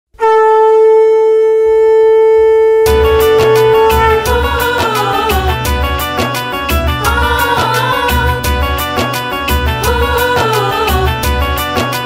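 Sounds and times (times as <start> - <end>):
conch shell blown in long note: 0.2 - 8.8.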